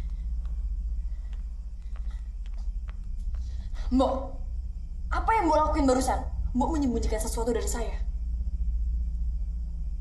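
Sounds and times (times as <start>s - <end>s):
low rumbling drone: 0.0s - 10.0s.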